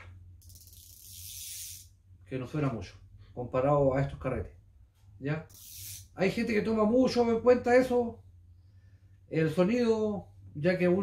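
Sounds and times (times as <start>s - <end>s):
fishing reel drag clicker: 0.4s - 1.9s, 5.5s - 6.0s.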